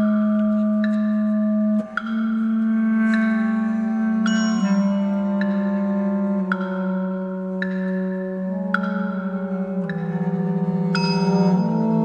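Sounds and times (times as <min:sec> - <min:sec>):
low held wind notes: 0:00.0 - 0:12.0
ringing percussion notes: 0:00.0 - 0:12.0.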